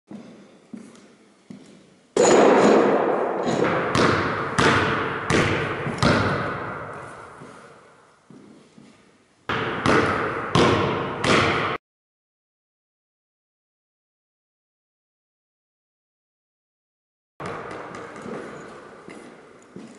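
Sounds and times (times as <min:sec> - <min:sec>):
basketball bouncing on wooden floor: 0:02.2 - 0:07.0, 0:09.5 - 0:11.8, 0:17.4 - 0:19.9.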